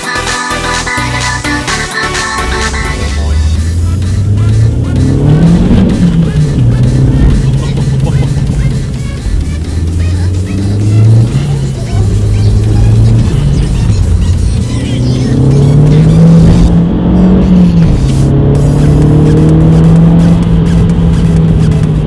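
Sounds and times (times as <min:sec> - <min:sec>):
car engine accelerating through gears: 0:02.2 - 0:22.0.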